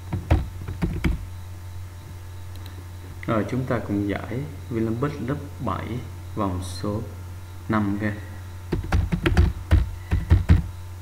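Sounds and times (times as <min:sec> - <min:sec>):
computer keyboard typing: 0:00.1 - 0:01.2, 0:08.7 - 0:10.7.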